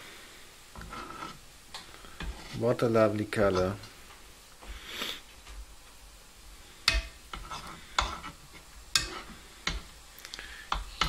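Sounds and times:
faint bubbling hiss: 0.0 - 11.0
metal spoon scraping a pan: 0.8 - 1.4, 6.8 - 9.9.

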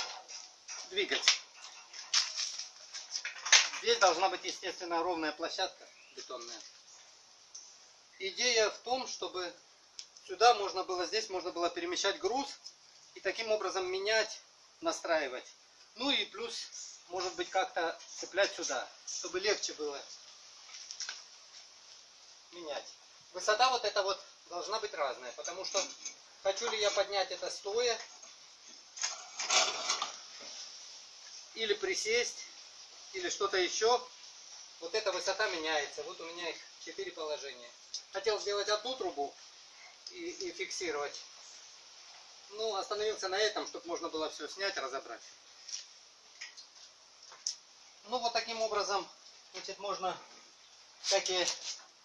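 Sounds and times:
metal scraping on metal: 0.0 - 2.6, 29.0 - 30.3
metal rig rolling over stone: 0.0 - 4.0, 29.0 - 30.2.

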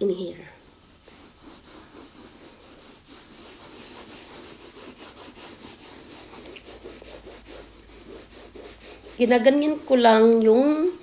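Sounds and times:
wipe rubbing over handbag canvas: 0.0 - 11.0.

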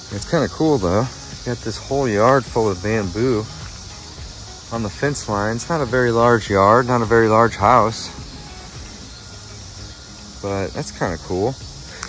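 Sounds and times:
low hiss of outdoor ambience: 0.0 - 12.0
quiet background music: 0.0 - 12.0.

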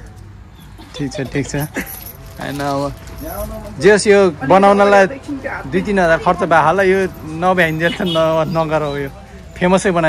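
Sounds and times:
light jingling rattle: 0.8 - 4.0.

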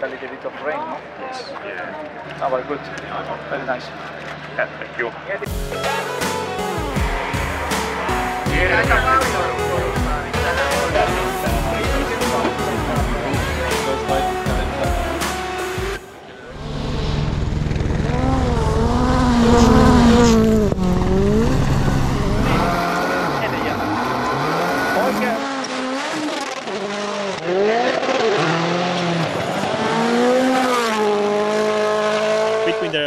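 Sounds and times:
rally car engine revving hard: 6.6 - 14.1, 16.6 - 33.0.

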